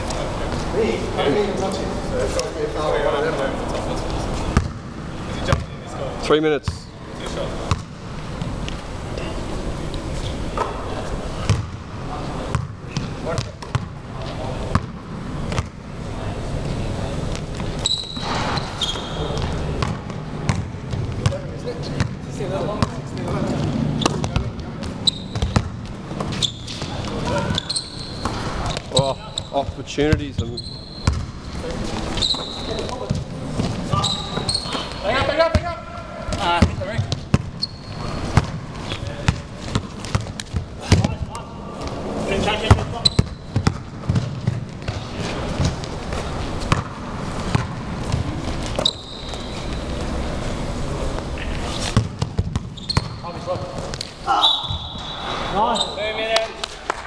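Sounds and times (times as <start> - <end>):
players' voices echoing: 0.0 - 48.5, 53.0 - 57.0
steady room noise: 0.0 - 57.0
basketball bouncing on hall floor: 4.4 - 6.0, 7.6 - 8.6, 11.4 - 16.0, 17.3 - 31.5, 32.2 - 42.0, 42.6 - 50.2, 51.9 - 55.1
sneaker squeaks: 17.2 - 22.2, 22.8 - 35.6, 36.3 - 41.2, 42.6 - 50.4, 51.4 - 56.3.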